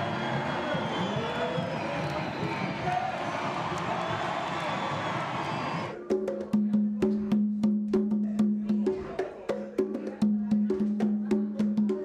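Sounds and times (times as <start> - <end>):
crowd talking and calling out: 0.0 - 6.1.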